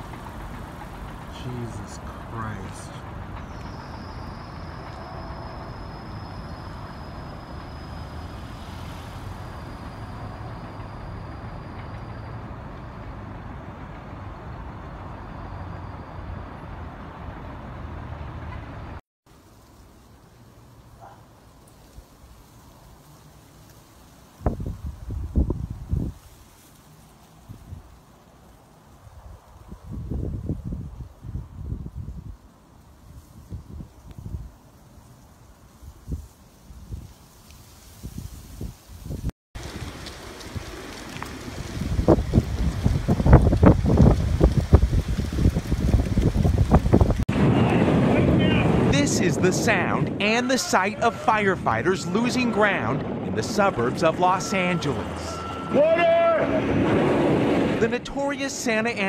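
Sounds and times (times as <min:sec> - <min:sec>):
wind gusting on microphone: 0:24.3 - 0:26.5, 0:27.4 - 0:28.0, 0:28.9 - 0:58.0.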